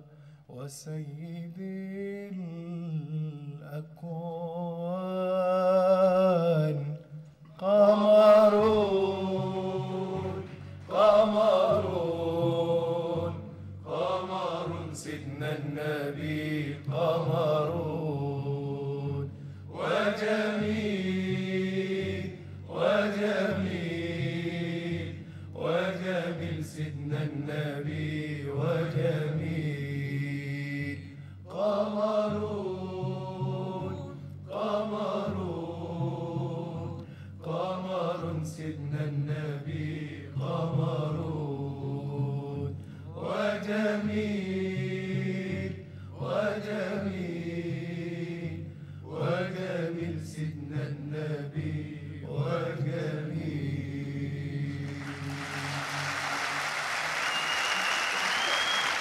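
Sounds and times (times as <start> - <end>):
devotional chant singing: 0.0 - 59.0.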